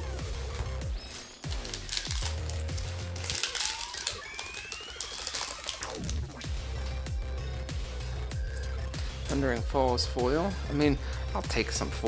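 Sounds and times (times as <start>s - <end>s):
electronic music with heavy bass: 0.0s - 12.0s
foil wrapper crinkling: 1.1s - 6.3s.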